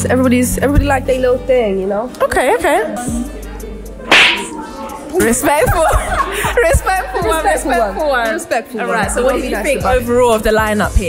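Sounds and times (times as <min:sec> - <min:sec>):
open-hand slap on face: 0:04.1 - 0:04.5.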